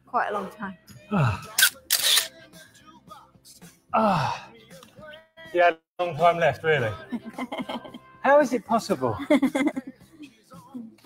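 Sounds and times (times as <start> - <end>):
person sighing: 1.1 - 1.6, 4.0 - 4.5
person breathing out hard: 4.0 - 4.6.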